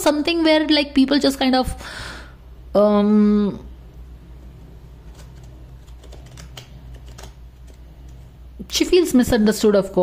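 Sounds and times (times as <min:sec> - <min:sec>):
steady low hum: 0:00.0 - 0:10.0
cards clicking: 0:05.1 - 0:08.2.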